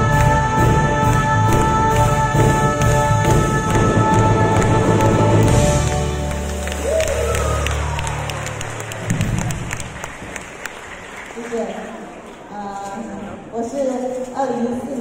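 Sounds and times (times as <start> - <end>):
live band music: 0.0 - 9.9
audience clapping: 3.7 - 12.6.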